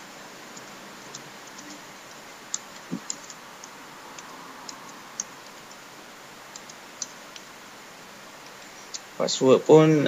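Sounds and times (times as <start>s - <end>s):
background hiss: 0.0s - 10.0s
keyboard typing: 0.5s - 7.6s.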